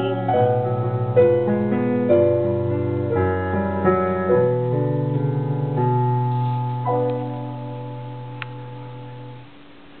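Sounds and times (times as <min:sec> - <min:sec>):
piano chord ringing: 0:00.0 - 0:09.7.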